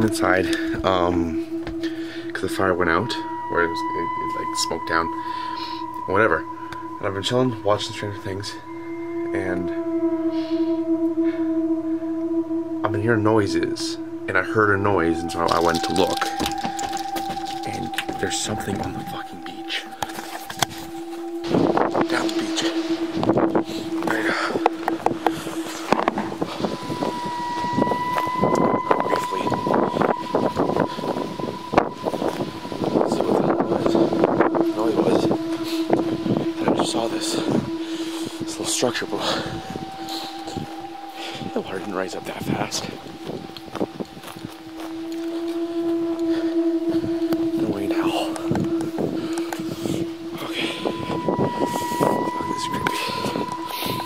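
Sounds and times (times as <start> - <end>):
steady high tone: 0.0 - 54.0
wind on microphone: 0.0 - 54.0
footsteps and rustling on ground: 15.0 - 22.8, 41.8 - 46.5.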